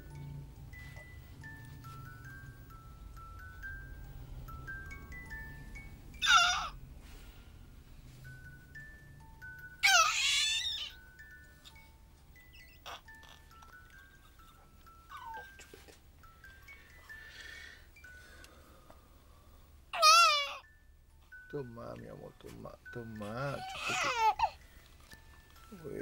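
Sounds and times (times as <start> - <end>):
soft chime-like tune: 0.0 - 6.2, 11.0 - 19.5, 20.6 - 26.0
baby squealing: 6.2 - 6.8, 9.8 - 11.0, 12.5 - 13.5, 15.1 - 15.6, 19.9 - 20.7, 23.5 - 24.6.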